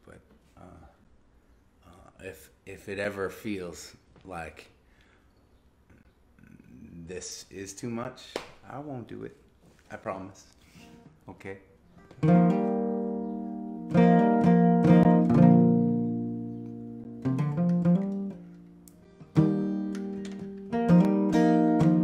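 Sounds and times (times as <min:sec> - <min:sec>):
acoustic guitar chords: 0:12.0 - 0:22.0.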